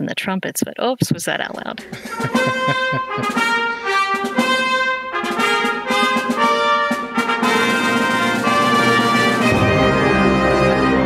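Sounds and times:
brass instruments playing chords: 1.8s - 11.0s.

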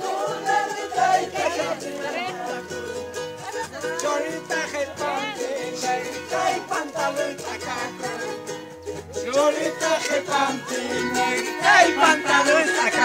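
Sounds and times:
charango strummed: 0.0s - 13.0s
group singing: 0.0s - 13.0s.

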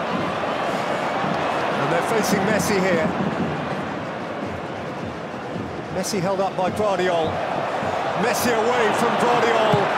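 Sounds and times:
stadium crowd noise: 0.0s - 9.9s.

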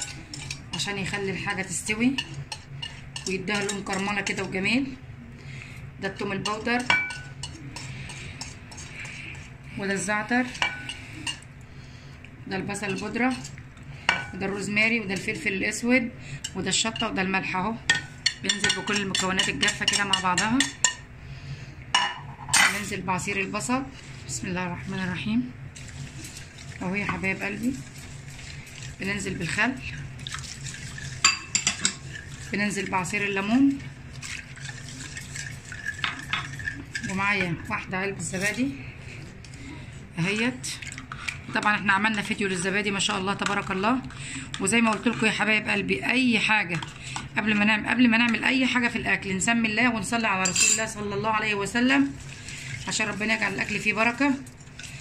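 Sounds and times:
utensil scraping spices: 0.0s - 1.2s, 6.4s - 9.6s, 30.2s - 37.5s
whisk stirring liquid in bowl: 0.0s - 5.0s, 6.0s - 11.5s, 12.7s - 21.0s, 23.1s - 49.0s, 50.3s - 55.0s
metal utensil clinking on dish: 50.4s - 50.9s.

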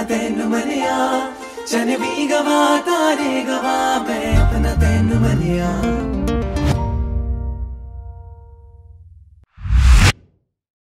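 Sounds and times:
held song notes: 0.1s - 6.6s.

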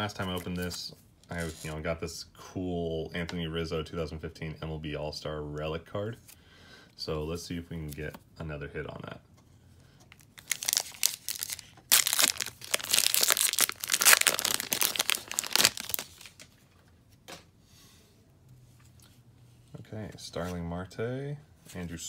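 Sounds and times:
plastic wrapper tearing and crinkling: 10.1s - 16.5s.

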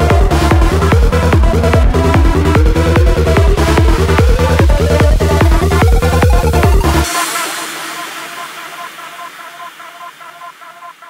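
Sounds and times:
pulsing synth pattern: 0.0s - 11.0s
reverb noise wash: 0.0s - 11.0s.

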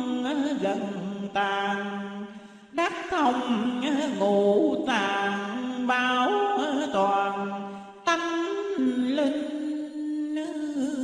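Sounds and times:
person chanting scripture: 0.0s - 11.0s.

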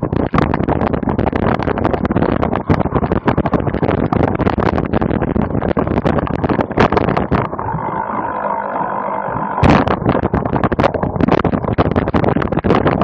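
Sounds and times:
wind: 0.0s - 13.0s.

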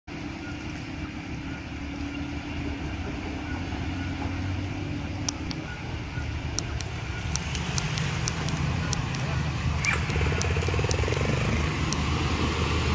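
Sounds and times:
diesel truck engine running: 0.1s - 12.9s
water rushing around truck: 0.1s - 12.9s
sharp clicks: 5.2s - 5.7s, 6.5s - 12.1s.

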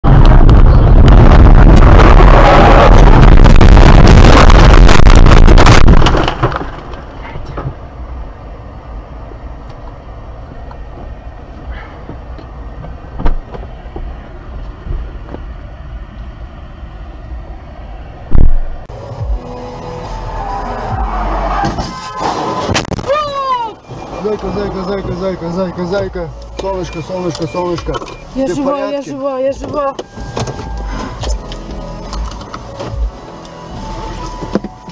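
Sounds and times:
car crashing through grass: 3.8s - 7.1s.

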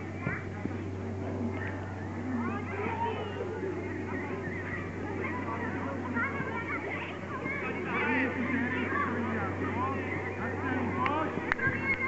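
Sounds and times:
steady low hum: 0.0s - 12.0s
children and spectators shouting: 1.6s - 12.0s.

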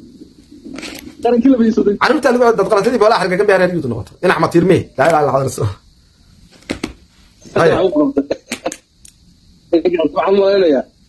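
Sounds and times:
man speaking: 1.2s - 5.8s, 7.5s - 8.3s
sharp clicks: 8.5s - 9.2s.

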